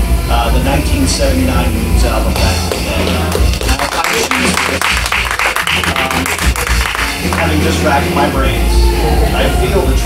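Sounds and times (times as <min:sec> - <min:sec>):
people clapping: 0:02.4 - 0:08.4
live rock band music: 0:02.4 - 0:09.4.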